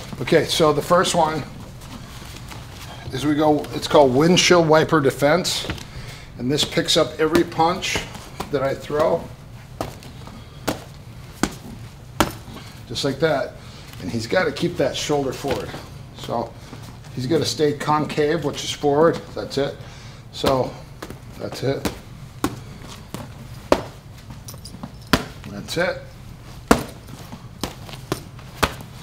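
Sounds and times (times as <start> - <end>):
boxing glove punches landing: 6.6 - 12.6, 20.4 - 24.0, 24.8 - 25.5, 26.6 - 29.0.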